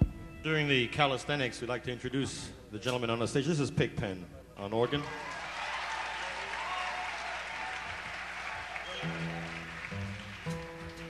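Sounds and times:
audience applauding and cheering: 4.9 - 11.0.

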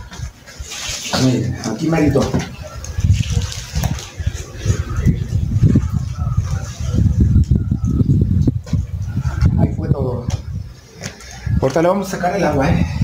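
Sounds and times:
wet concrete sloshing: 0.0 - 7.4.

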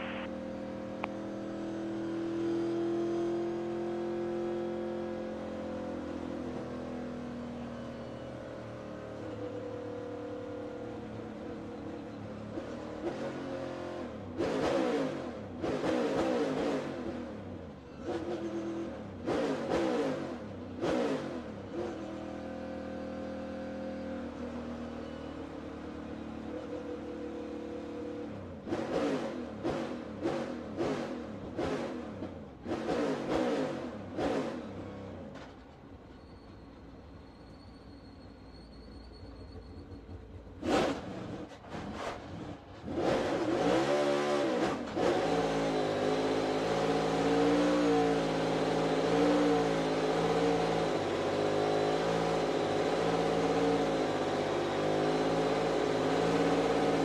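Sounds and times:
race car engine revving: 12.5 - 22.2, 27.8 - 35.1, 40.6 - 57.0.

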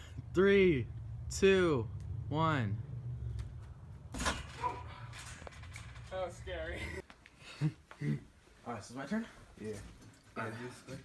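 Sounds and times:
low rumble: 0.0 - 6.2
trampoline mat and springs knocks: 3.4 - 6.1.

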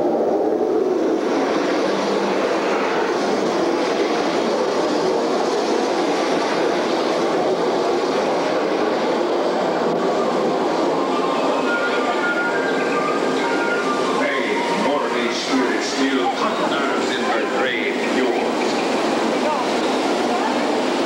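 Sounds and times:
boat rushing through water channel: 0.0 - 21.0.

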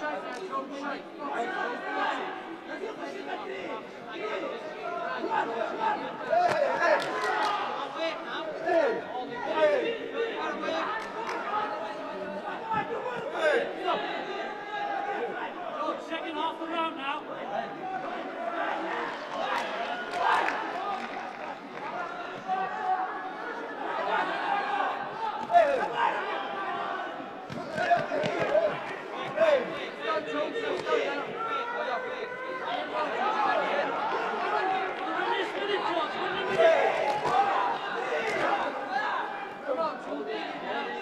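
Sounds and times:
crowd shouting and chatter: 0.0 - 41.0
ringside voices: 0.0 - 41.0.

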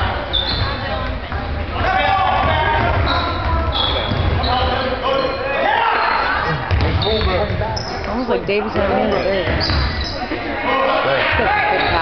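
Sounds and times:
sneakers squeaking on court: 0.3 - 1.5, 2.8 - 10.3, 11.7 - 12.0.

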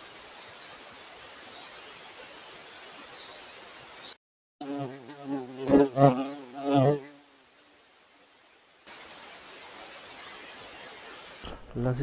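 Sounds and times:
flying insect buzzing: 4.6 - 7.8.

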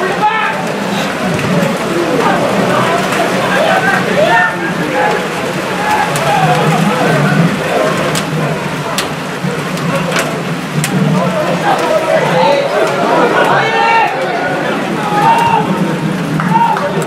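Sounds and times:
footballers shouting: 0.0 - 17.0.

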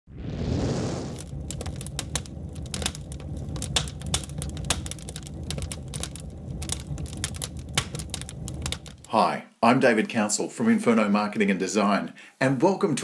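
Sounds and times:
steady low rumble: 0.0 - 9.1
fire crackling and popping: 0.1 - 9.2.

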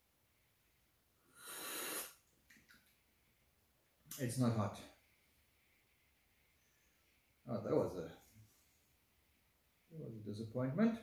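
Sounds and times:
person breathing: 1.2 - 2.2
faint mouth sounds: 1.3 - 3.0.

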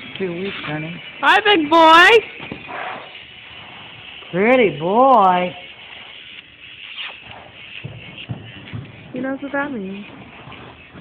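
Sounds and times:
horse hoofbeats on soft footing: 0.0 - 11.0.

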